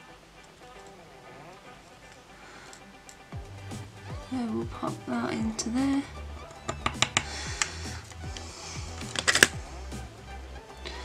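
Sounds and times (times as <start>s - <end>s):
background music: 0.0s - 11.0s
tweezers clicking on plastic: 6.6s - 7.3s.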